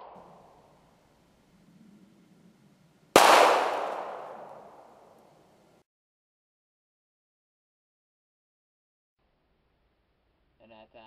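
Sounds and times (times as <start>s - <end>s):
pistol shot: 3.1s - 5.4s.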